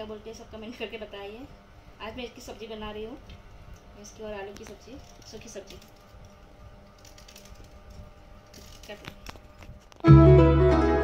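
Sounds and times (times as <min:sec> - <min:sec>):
music with plucked strings: 0:10.0 - 0:11.0.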